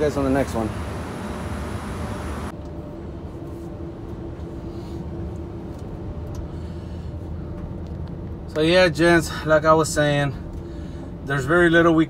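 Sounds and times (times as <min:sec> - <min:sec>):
vehicle engine rumble from inside: 0:00.0 - 0:12.0
steady hum: 0:00.1 - 0:07.6
airport ramp noise hiss: 0:00.2 - 0:02.5.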